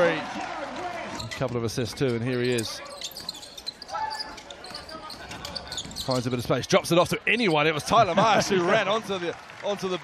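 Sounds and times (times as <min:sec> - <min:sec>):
arena crowd noise: 0:00.0 - 0:10.0.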